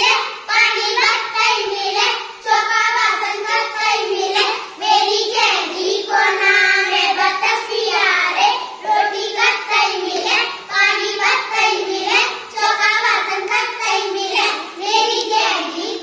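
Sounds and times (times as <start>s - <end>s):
children singing a folk song: 0.0s - 16.0s.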